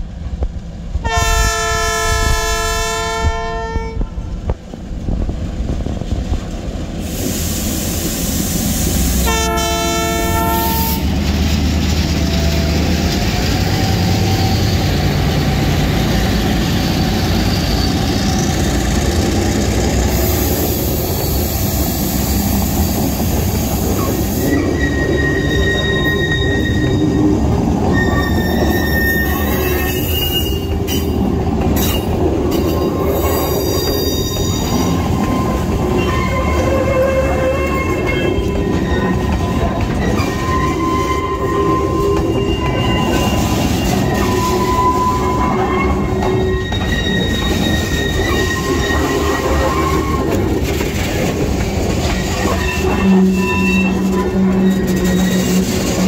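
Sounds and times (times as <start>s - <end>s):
freight train wheels rumbling on rails: 0.0s - 56.0s
wheels squealing: 8.1s - 56.0s.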